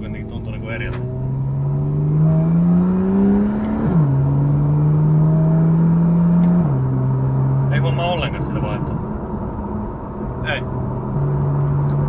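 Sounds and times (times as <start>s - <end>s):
car engine accelerating: 0.0s - 12.0s
revs dropping at upshift: 0.0s - 12.0s.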